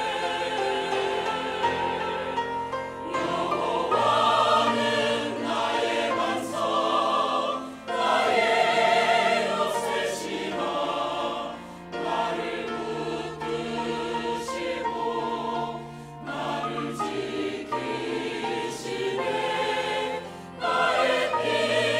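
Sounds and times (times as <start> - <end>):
mixed choir singing: 0.0 - 21.9
piano accompaniment: 0.0 - 21.9.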